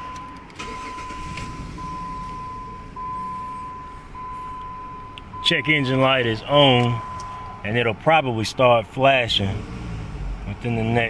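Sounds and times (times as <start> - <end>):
high warning chime: 0.0 - 7.9
car engine idling with misfire: 0.0 - 11.0.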